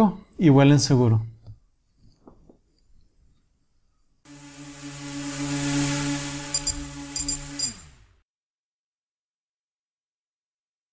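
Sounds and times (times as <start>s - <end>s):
high clicks: 4.3s - 7.9s
synthesized logo tone: 4.3s - 8.0s.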